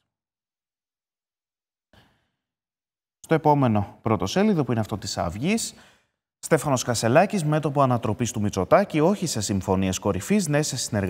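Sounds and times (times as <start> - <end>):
faint breath: 5.8 - 6.2.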